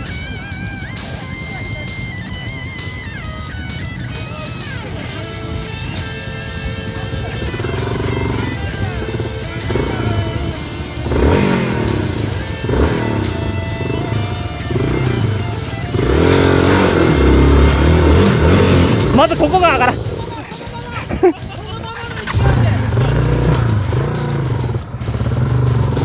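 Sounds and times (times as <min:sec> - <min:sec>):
background music: 0:00.0 - 0:26.0
motorcycle engine revving: 0:00.0 - 0:26.0
voices: 0:00.0 - 0:26.0.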